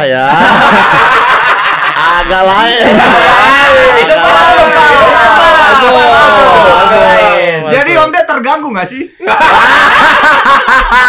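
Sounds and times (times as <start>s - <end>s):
men laughing loudly: 0.2s - 7.2s, 9.2s - 11.0s.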